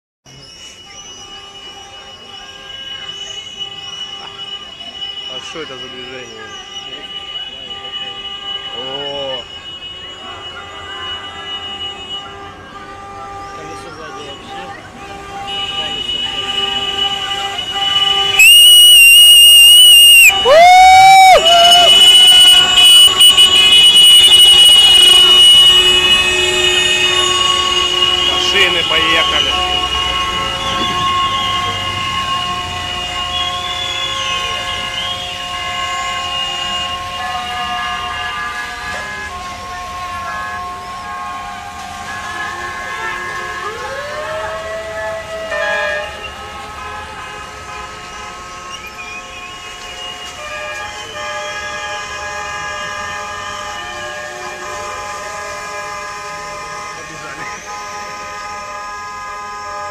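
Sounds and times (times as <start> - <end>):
heavy vehicles rumbling: 0.2 - 59.9.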